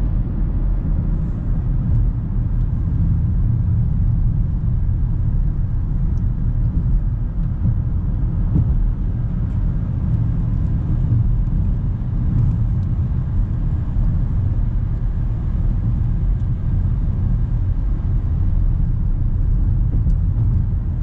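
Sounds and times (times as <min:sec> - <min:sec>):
car engine and tyres rumbling: 0:00.0 - 0:21.0.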